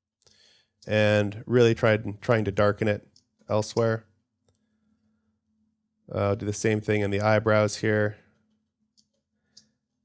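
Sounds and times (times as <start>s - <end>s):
person speaking: 0.9s - 4.0s, 6.1s - 8.2s.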